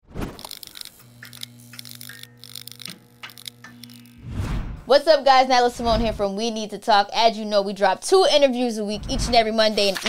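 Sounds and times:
electrical crackling and sputtering: 0.2 - 4.4
neon sign electrical hum: 0.4 - 10.0.

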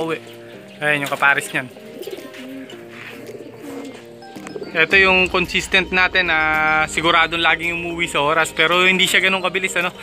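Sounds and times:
background music: 0.0 - 10.0
pigeons cooing: 0.2 - 4.9.

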